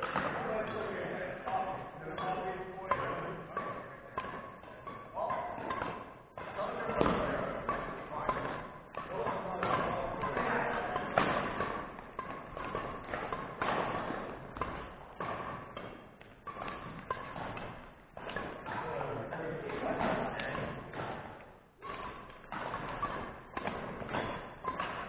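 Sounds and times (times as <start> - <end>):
racket striking shuttlecock: 0.0 - 25.0.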